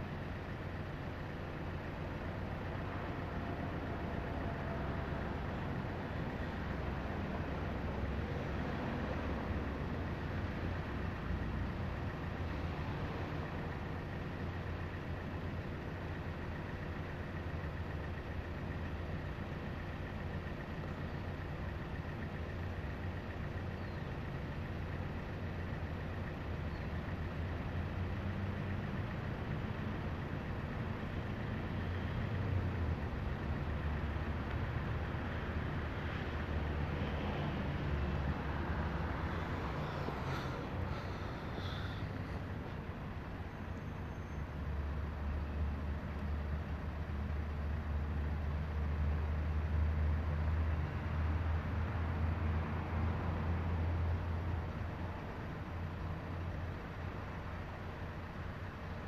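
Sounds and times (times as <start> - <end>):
low outdoor rumble: 0.0 - 59.0.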